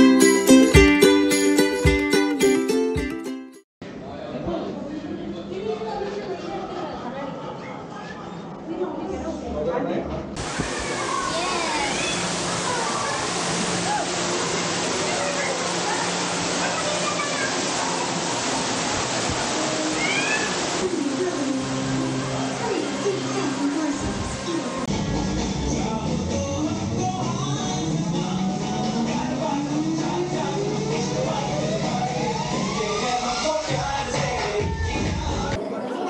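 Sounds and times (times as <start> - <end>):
music over sound system: 0.0 - 3.6, 24.2 - 35.6
crowd chatter: 3.8 - 26.6, 27.2 - 36.0
faint voices: 10.4 - 24.9.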